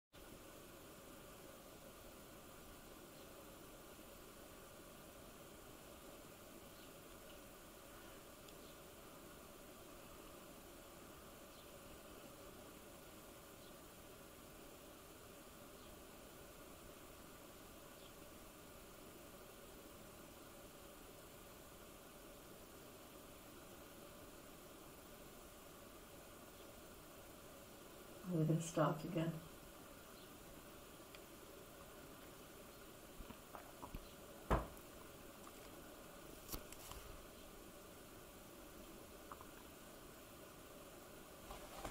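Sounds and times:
faint ticks: 8.4 - 8.8, 31.1 - 31.3.

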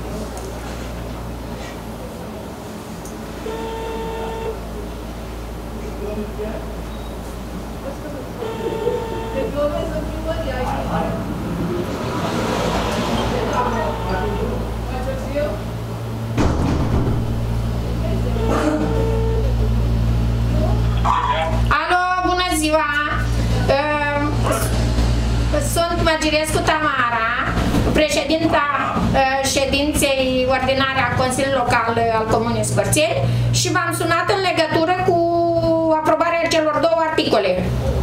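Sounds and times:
low electrical hum: 0.0 - 12.0, 13.3 - 38.0
phone ringback beep: 18.4 - 19.5.

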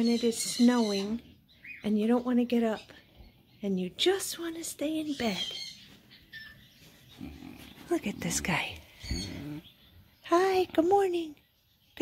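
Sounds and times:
pig grunting softly: 7.1 - 9.8.

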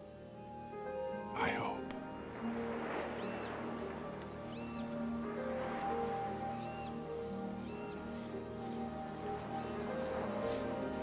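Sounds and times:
slow orchestral music: 0.0 - 11.0
surf washing on a beach: 1.4 - 11.0
gull calling: 3.1 - 8.1.

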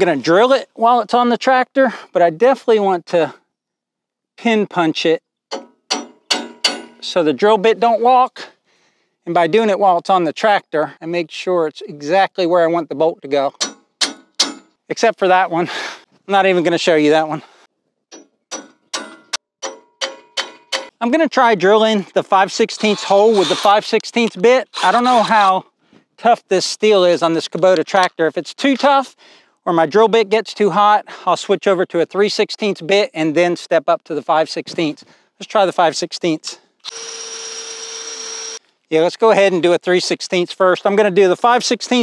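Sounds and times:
hammer striking metal punch: 5.5 - 7.1, 13.6 - 14.7, 18.1 - 20.9
cordless drill drilling into steel: 22.8 - 23.9, 24.7 - 25.4, 36.8 - 38.6.

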